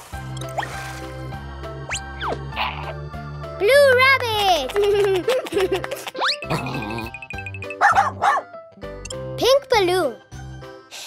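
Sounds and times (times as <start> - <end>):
children's background music: 0.0 - 11.0
cartoon puppy yipping: 7.6 - 8.5.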